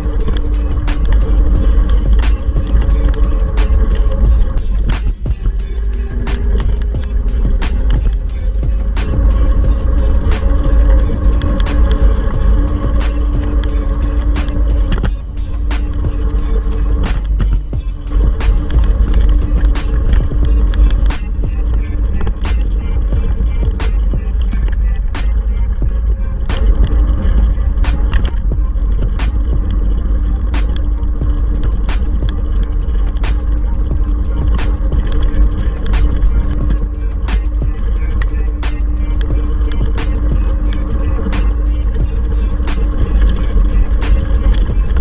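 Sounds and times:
background music with a beat: 0.0s - 45.0s
scooter wheels on concrete: 0.0s - 45.0s
wind rumble: 0.0s - 45.0s.

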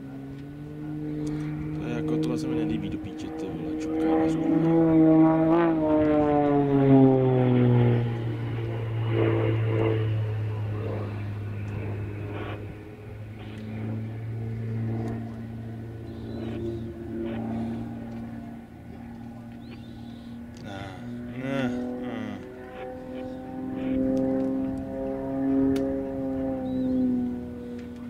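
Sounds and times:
propeller aircraft engine: 0.0s - 28.0s.

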